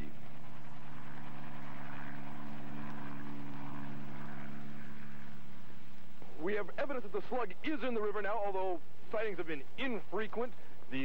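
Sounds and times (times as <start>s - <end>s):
helicopter engine and rotor drone: 0.0s - 11.0s.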